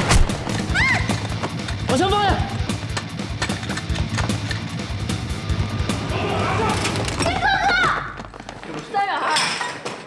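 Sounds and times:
person crying out: 6.1 - 7.0.

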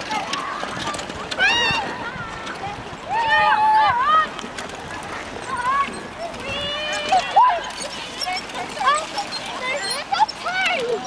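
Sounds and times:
children shouting and calling: 0.0 - 11.0.

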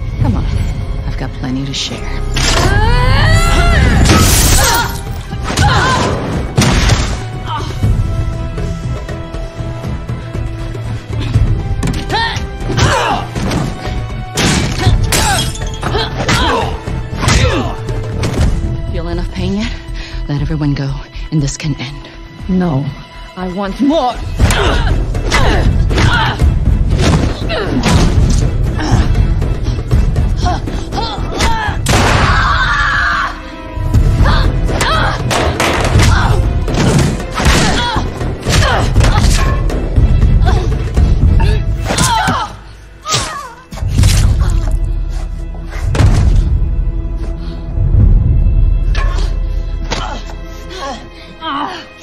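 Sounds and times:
dramatic action music: 0.0 - 52.0.

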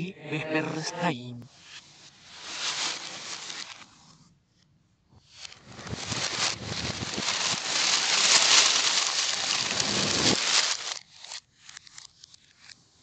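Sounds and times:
paper bags rustling: 2.3 - 4.1, 5.4 - 11.8.

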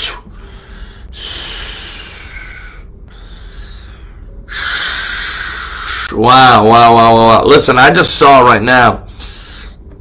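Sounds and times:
man hissing breaths: 0.0 - 6.2.

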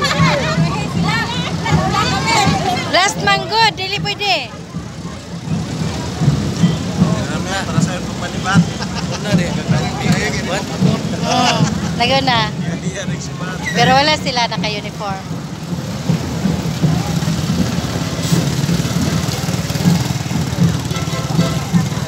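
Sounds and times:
shouting and laughter: 0.0 - 4.7, 8.5 - 12.6
crowd chatting: 0.0 - 22.0
vehicle engine hum: 0.0 - 22.0.

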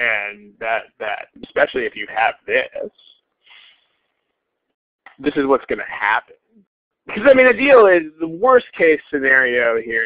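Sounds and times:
man breathing: 3.4 - 4.2.

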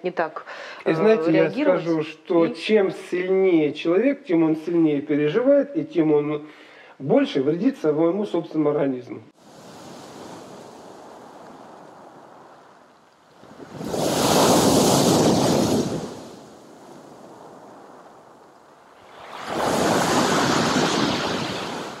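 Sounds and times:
waves breaking on pebble beach: 9.4 - 22.0.

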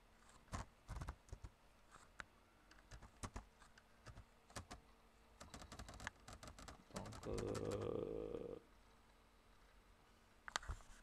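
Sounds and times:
low steady hum: 0.0 - 11.0
computer keyboard typing: 0.5 - 1.5, 2.7 - 3.4, 4.0 - 4.8, 5.4 - 7.9.

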